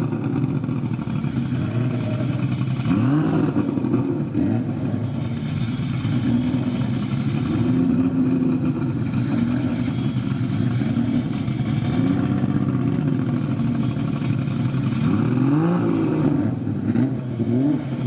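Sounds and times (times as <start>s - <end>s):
race car engines idling and revving: 0.0s - 18.0s.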